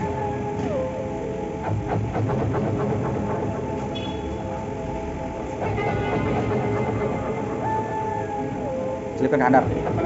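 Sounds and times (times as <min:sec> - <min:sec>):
background music with held tones: 0:00.0 - 0:10.0.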